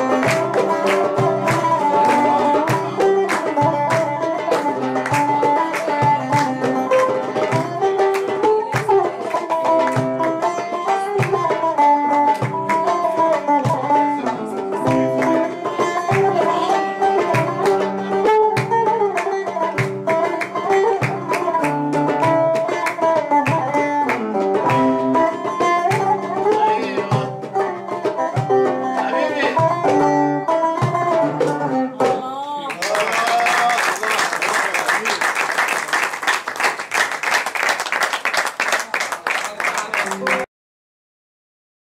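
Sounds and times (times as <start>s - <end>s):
audience applause: 0.0s - 2.9s, 32.7s - 40.5s
plucked string melody: 0.0s - 32.6s.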